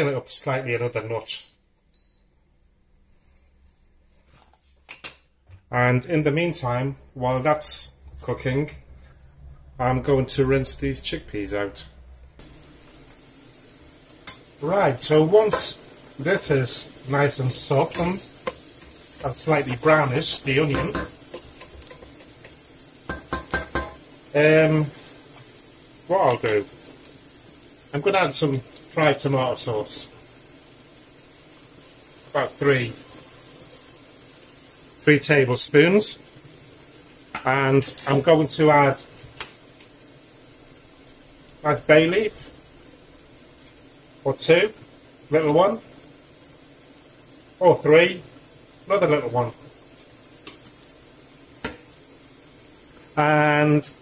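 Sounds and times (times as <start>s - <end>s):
vegetables sizzling in oil: 10.0s - 54.0s
wooden spatula knocking on pot: 23.1s - 24.0s.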